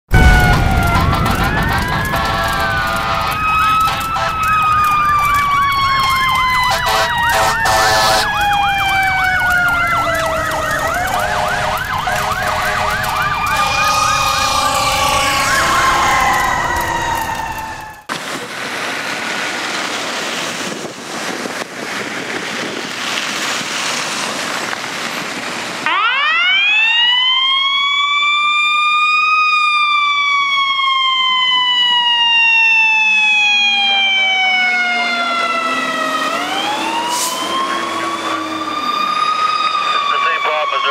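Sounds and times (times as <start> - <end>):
emergency vehicle sirens wailing: 0.1 - 40.9
outdoor street noise: 0.1 - 40.9
fire truck siren winding up: 0.2 - 18.1, 25.8 - 40.9.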